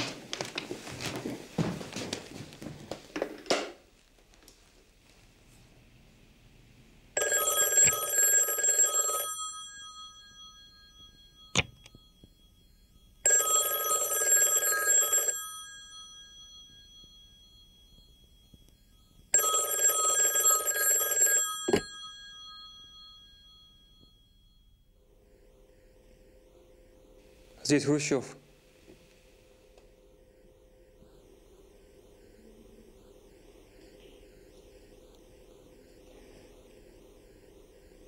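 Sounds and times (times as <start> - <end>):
telephone bell ringing: 7.2 - 24.9.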